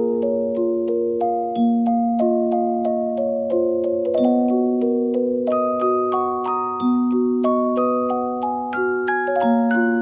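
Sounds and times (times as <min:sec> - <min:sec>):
music box melody: 0:00.0 - 0:10.0.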